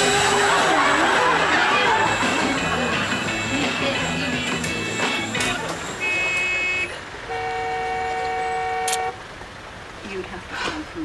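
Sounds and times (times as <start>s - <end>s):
background music: 0.0s - 6.0s
long low car horn: 6.0s - 9.2s
short high car horn: 6.0s - 9.2s.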